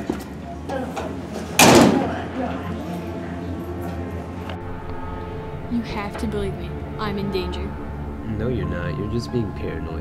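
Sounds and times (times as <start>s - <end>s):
metal locker door slamming: 1.6s - 2.2s.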